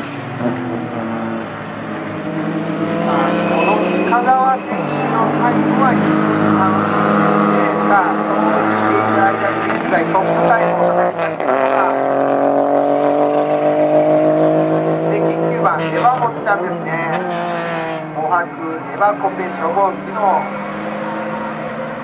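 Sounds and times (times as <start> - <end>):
small car engine revving: 0.0 - 16.0, 16.7 - 18.3.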